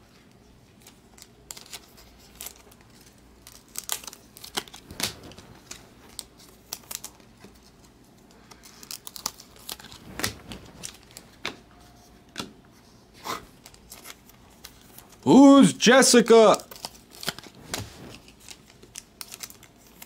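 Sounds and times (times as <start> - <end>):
trading cards snapping and rustling: 0.8 - 11.6, 16.5 - 20.0.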